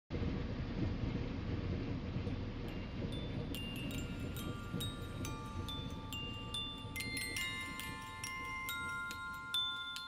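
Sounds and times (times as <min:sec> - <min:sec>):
low rumbling electronic wash: 0:00.2 - 0:10.0
bright chime-like pings: 0:03.2 - 0:10.0.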